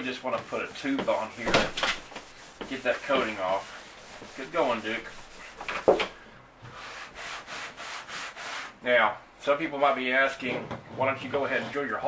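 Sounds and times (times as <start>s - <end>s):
scuff pad rubbing on plastic: 0.4s - 6.0s.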